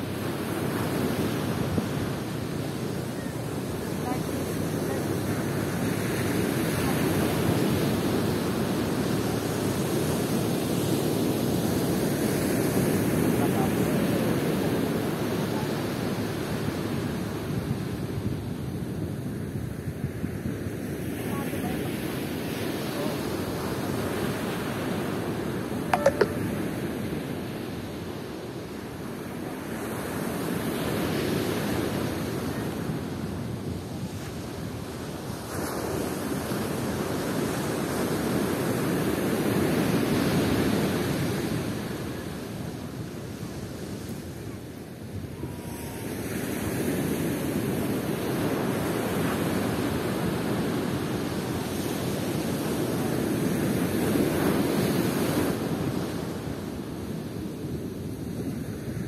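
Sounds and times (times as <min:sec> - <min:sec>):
ocean surf washing up a beach: 0:00.0 - 0:59.0.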